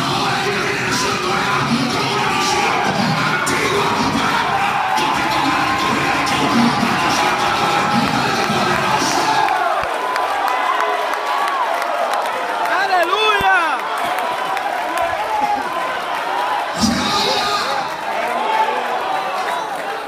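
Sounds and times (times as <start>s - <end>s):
loud worship music: 0.0s - 10.0s, 16.6s - 18.9s
congregation shouting and cheering: 0.0s - 20.0s.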